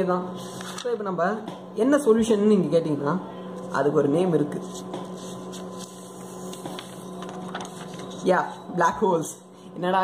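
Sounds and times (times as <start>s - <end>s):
electrical hum: 0.0s - 10.0s
paper sheets rustling: 0.4s - 0.9s, 4.6s - 8.6s.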